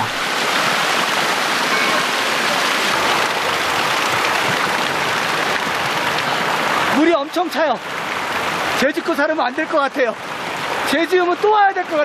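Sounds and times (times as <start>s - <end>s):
water splashing on grating: 0.0s - 6.4s
water pouring from spouts: 0.0s - 12.0s.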